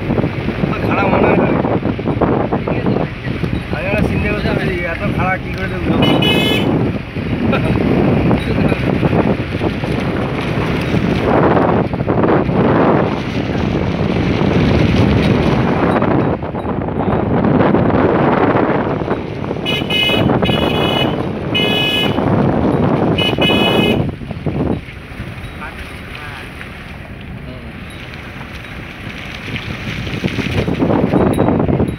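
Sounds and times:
wind rushing over microphone: 0.0s - 31.9s
vehicle horn blasts: 5.9s - 6.8s, 19.6s - 22.4s, 23.1s - 24.1s.

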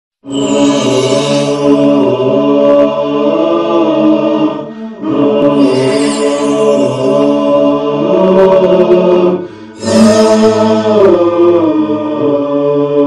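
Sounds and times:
voices chanting in long held notes: 0.2s - 13.0s.

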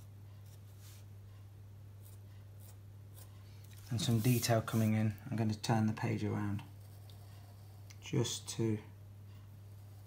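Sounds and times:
steady low hum: 0.0s - 10.0s
marker scratching on paper: 3.9s - 5.1s.

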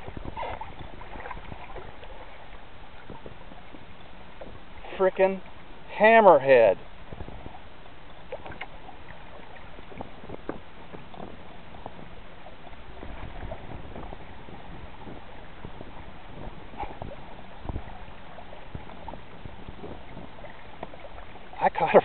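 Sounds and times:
water splashing against kayak hull: 0.0s - 22.0s.

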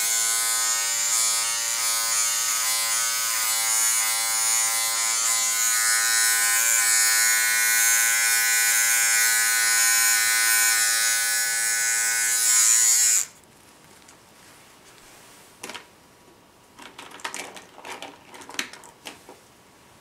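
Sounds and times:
electric hair clipper buzzing: 0.0s - 13.4s.

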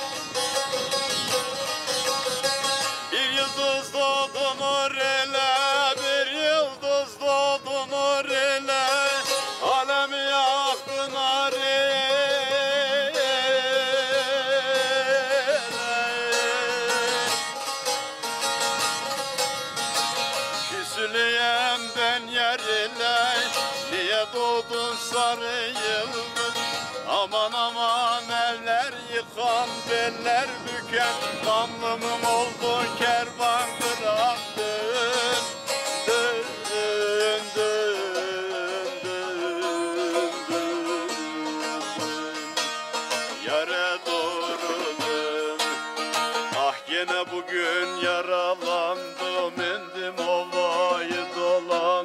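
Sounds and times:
man singing folk song: 0.0s - 52.0s
plucked lute melody: 0.0s - 52.0s.

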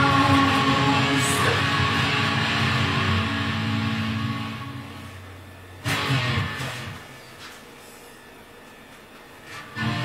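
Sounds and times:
electric guitar chord ringing: 0.0s - 7.0s, 9.8s - 10.0s.

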